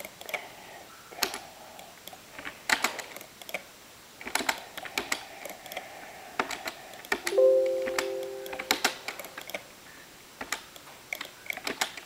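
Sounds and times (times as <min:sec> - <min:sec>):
keyboard typing clicks: 0:06.4 - 0:09.6
short chime: 0:07.4 - 0:09.0.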